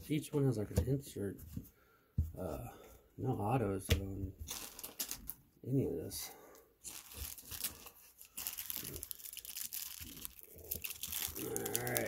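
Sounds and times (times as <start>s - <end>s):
foil wrapper crinkling: 4.5s - 5.4s, 6.8s - 12.0s.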